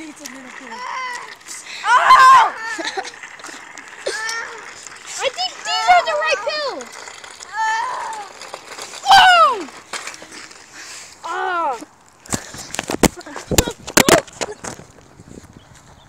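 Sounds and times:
boys shouting: 0.7s - 3.1s, 4.0s - 6.9s, 9.0s - 9.7s.

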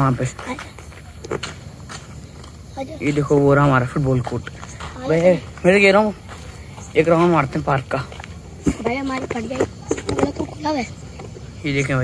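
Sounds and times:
faint outdoor background noise: 0.0s - 12.0s
people speaking: 2.8s - 11.0s.

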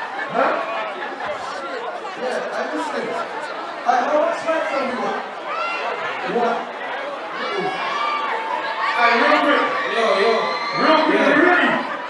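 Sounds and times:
voices talking over one another: 0.0s - 12.0s.

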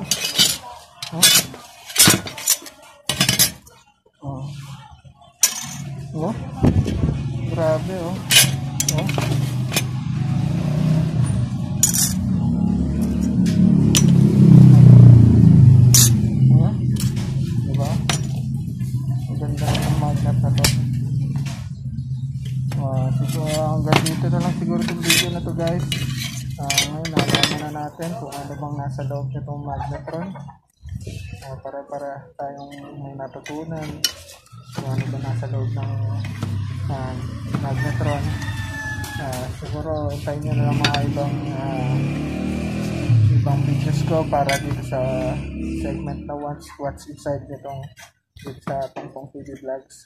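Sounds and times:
metal parts clinking and knocking: 0.0s - 3.6s, 5.4s - 5.9s, 8.2s - 9.9s, 11.8s - 12.2s, 15.9s - 16.2s, 24.8s - 27.7s
magnet clinking against metal: 8.2s - 9.9s, 11.8s - 12.2s, 15.9s - 16.2s.

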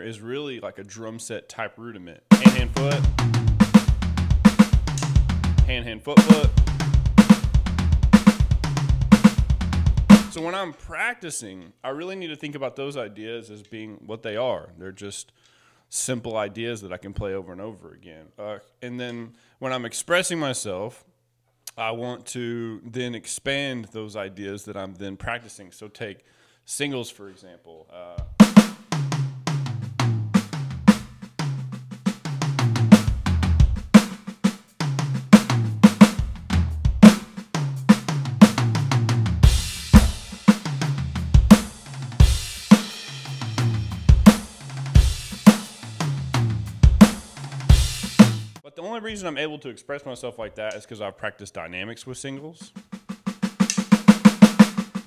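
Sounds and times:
electronic drum kit groove: 2.3s - 10.4s, 28.2s - 48.6s, 52.7s - 55.0s
bass drum hits: 2.4s - 10.3s, 38.5s - 42.6s.

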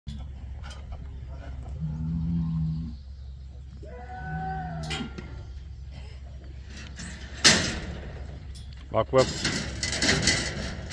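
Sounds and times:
cattle mooing: 1.7s - 3.0s.

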